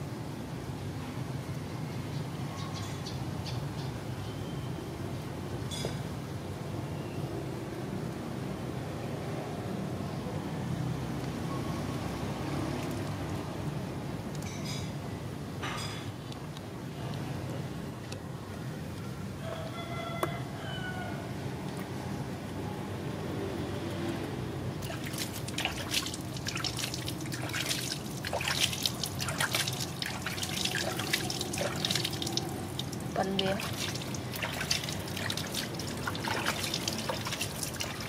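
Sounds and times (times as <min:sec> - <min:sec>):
water splashing into a basin: 0:24.8 - 0:38.0.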